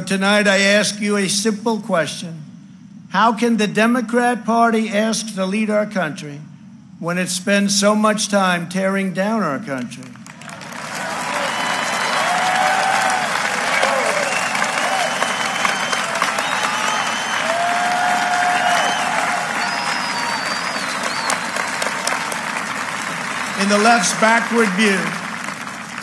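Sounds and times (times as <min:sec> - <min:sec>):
audience applauding: 0:10.1 - 0:26.0.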